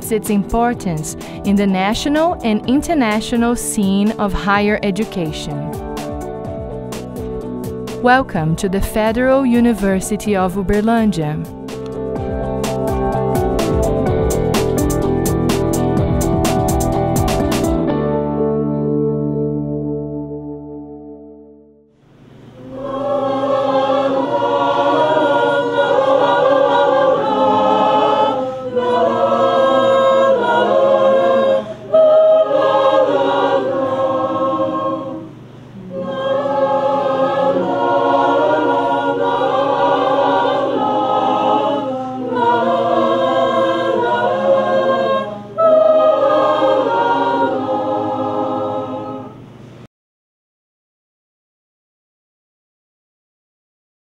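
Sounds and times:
mixed choir singing: 0:00.0 - 0:17.8, 0:22.6 - 0:49.6.

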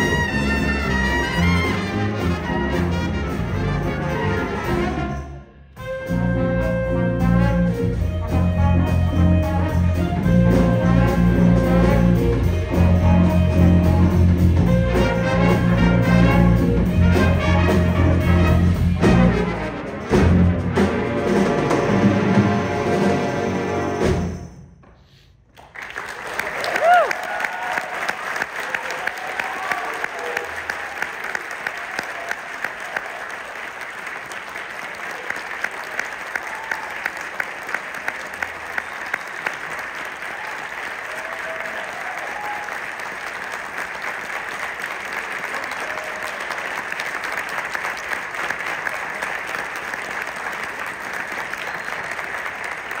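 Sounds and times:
audience applauding and cheering: 0:25.5 - 0:53.0
loud whoop: 0:26.6 - 0:28.0, 0:28.6 - 0:30.5, 0:40.3 - 0:42.8.

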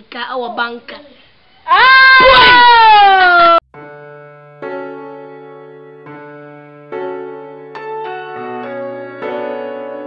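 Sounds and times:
child crying out: 0:01.7 - 0:03.6
soft electric piano music: 0:03.8 - 0:10.0.

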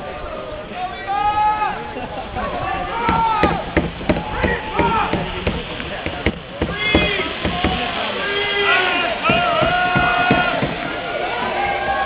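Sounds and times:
people shouting drawn-out calls: 0:02.8 - 0:05.4, 0:06.6 - 0:12.0
sharp knocks: 0:03.0 - 0:07.9, 0:09.3 - 0:11.0.

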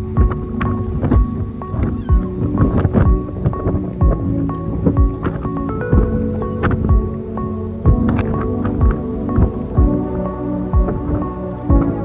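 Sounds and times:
deep drum beat: 0:00.0 - 0:07.2, 0:07.9 - 0:10.1, 0:10.8 - 0:12.0
background music with held chords: 0:00.0 - 0:12.0.

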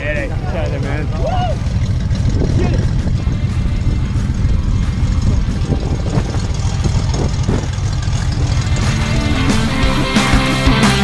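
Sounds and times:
wind rumble on microphone: 0:00.0 - 0:10.2
propeller engine running: 0:00.0 - 0:11.0.

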